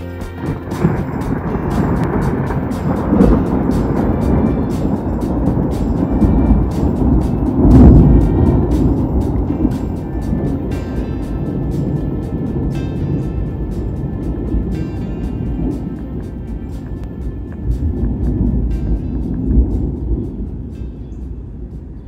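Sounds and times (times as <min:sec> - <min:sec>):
background music with steady beat: 0:00.0 - 0:22.0
rolling thunder rumble: 0:00.3 - 0:22.0.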